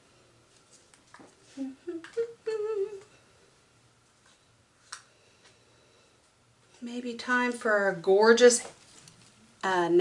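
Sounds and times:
woman humming: 1.5 - 3.2.

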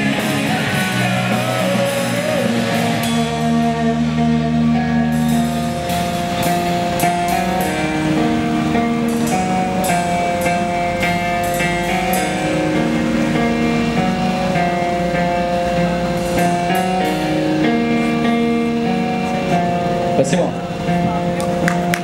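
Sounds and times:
held electric guitar notes: 0.0 - 22.0.

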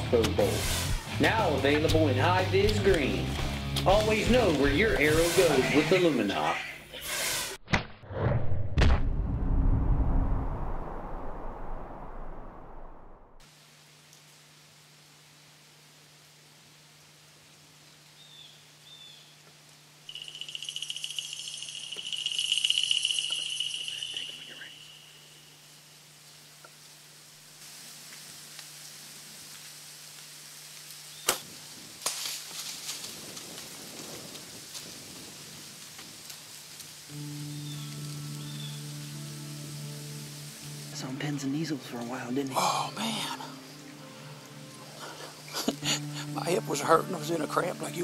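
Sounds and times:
steady music: 0.0 - 5.9, 37.1 - 48.0
loud hiss with whistling tone: 20.1 - 26.0
rustling in dry leaves: 20.1 - 41.0.

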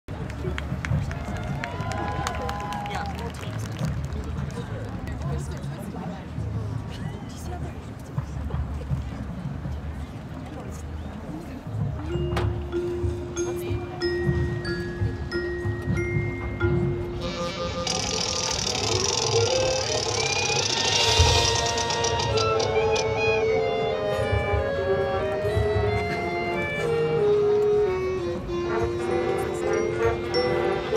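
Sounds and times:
marching band playing: 11.8 - 30.9
held call rising and falling: 17.3 - 23.2
spectators' voices: 18.0 - 30.9.

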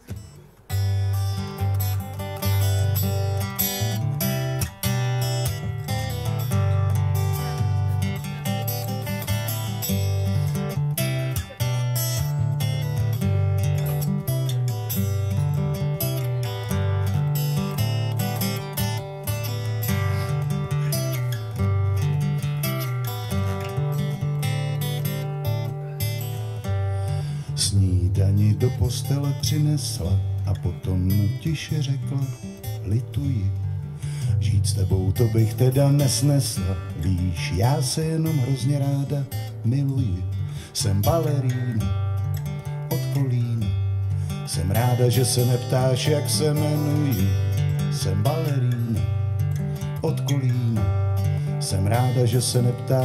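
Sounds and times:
acoustic guitar strumming: 0.0 - 53.0.

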